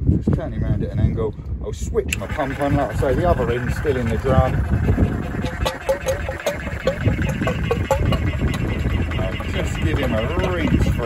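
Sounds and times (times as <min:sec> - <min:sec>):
pump humming: 0:02.1 - 0:11.0
gurgling chirps: 0:02.2 - 0:11.0.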